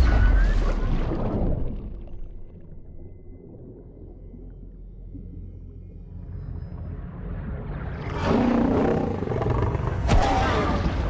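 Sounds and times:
low underwater rumble: 0.5s - 8.3s.

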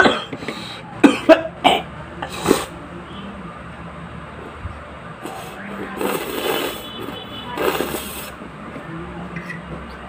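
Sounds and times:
man coughing: 0.0s - 0.4s, 1.0s - 1.9s.

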